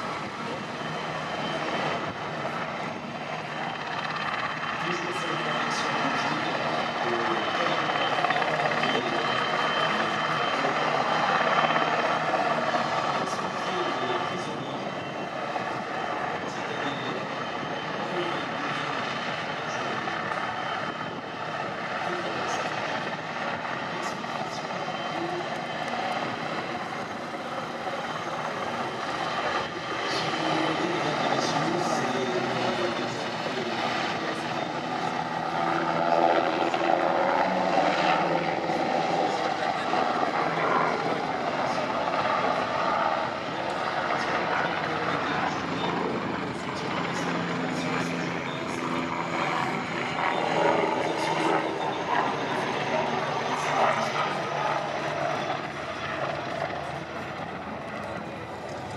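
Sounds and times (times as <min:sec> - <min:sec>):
helicopter turbines and rotor: 0:00.0 - 0:58.9.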